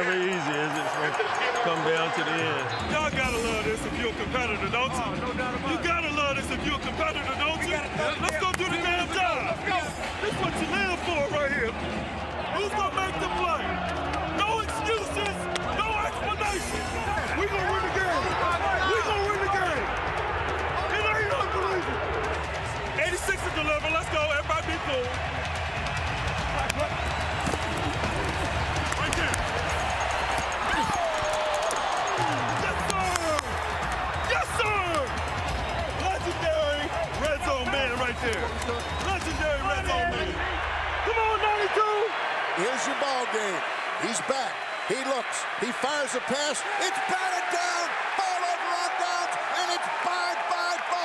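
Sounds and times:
stadium crowd noise: 0.0s - 51.0s
voices shouting: 26.5s - 51.0s.

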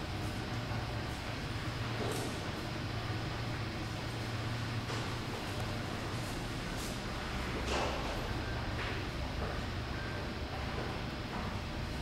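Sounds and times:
low indoor hum: 0.0s - 12.0s.

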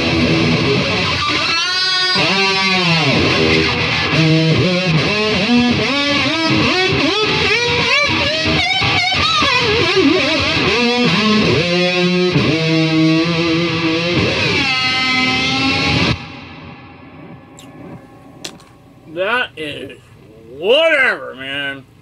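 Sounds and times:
electric guitar lead lines: 0.0s - 20.3s.

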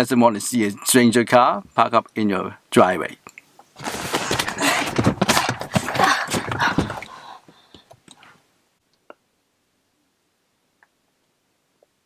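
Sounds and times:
loud rustling and scuffing: 3.8s - 7.1s.

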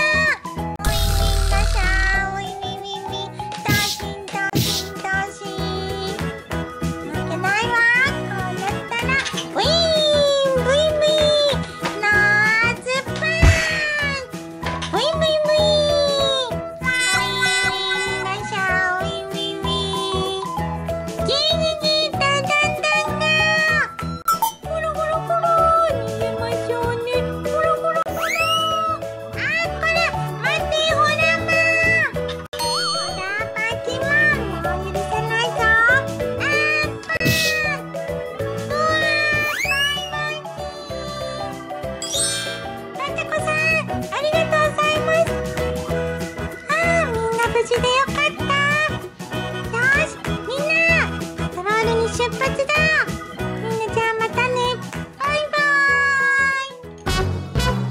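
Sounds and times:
children's music: 0.0s - 57.9s.

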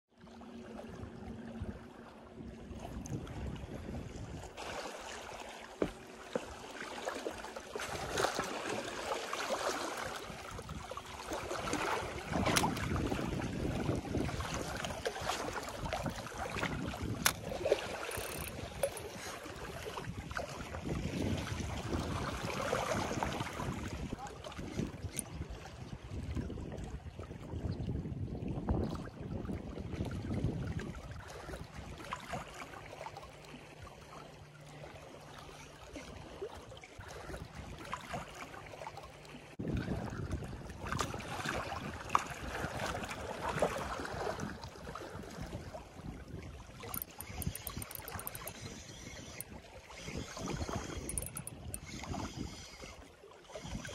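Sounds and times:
wind on microphone: 0.9s - 4.6s, 10.1s - 32.0s, 39.6s - 53.9s
sharp clicks: 46.9s - 48.7s, 50.9s - 51.9s.

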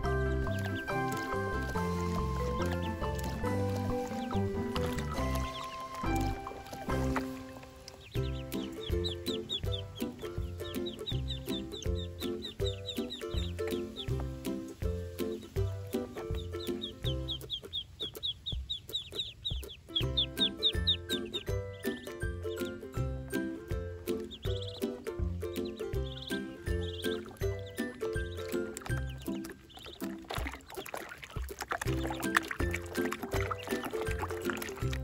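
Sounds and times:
background music with steady beat: 0.0s - 35.0s
ducklings peeping: 0.0s - 35.0s.

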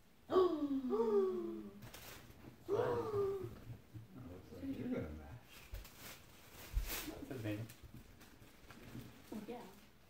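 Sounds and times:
person humming murmur: 0.3s - 1.8s, 2.7s - 3.6s
gift wrapping rustling: 1.8s - 2.4s, 5.4s - 10.0s.

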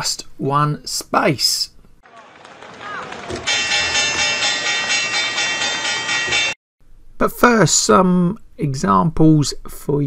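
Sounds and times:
bright ringing chord: 3.3s - 6.6s.

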